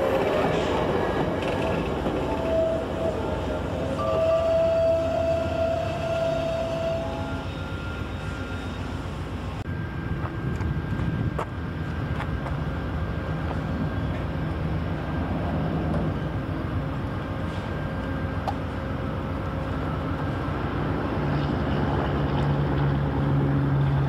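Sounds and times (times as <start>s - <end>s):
passenger train rumbling by: 0.0s - 24.0s.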